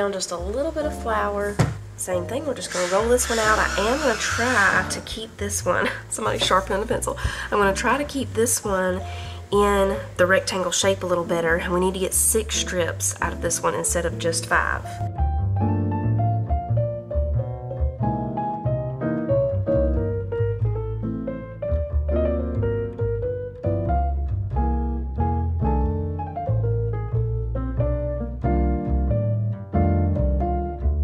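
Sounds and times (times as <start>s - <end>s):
piano: 0.0s - 31.0s
plucked bass line: 0.0s - 31.0s.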